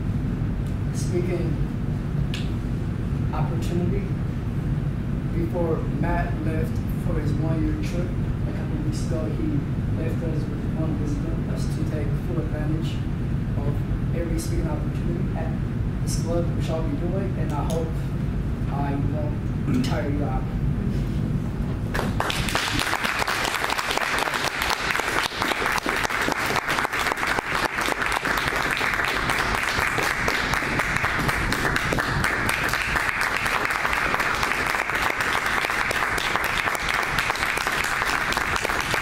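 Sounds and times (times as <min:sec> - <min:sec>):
audience applauding: 0:21.9 - 0:39.0.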